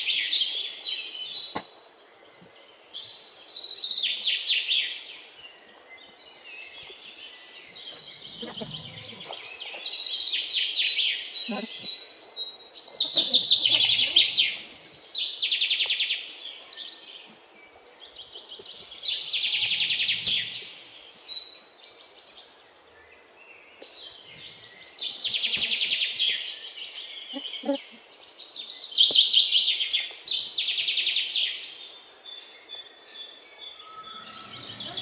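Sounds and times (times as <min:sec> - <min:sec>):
birds chirping and trilling: 0:00.0 - 0:35.0.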